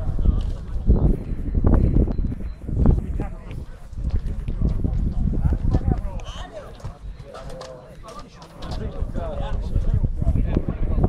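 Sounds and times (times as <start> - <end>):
steady low rumble: 0.0 - 7.4
distant voices calling and talking: 0.0 - 11.0.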